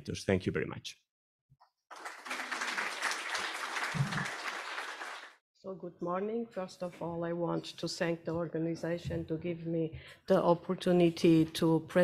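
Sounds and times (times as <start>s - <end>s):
audience applauding: 1.9s - 5.4s.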